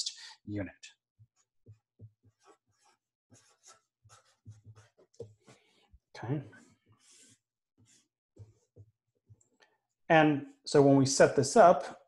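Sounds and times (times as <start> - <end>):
marker scratching on paper: 1.2 - 9.4.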